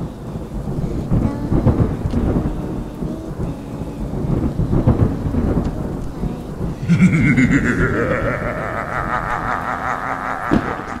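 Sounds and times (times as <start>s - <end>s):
eerie wavering drone: 0.0s - 11.0s.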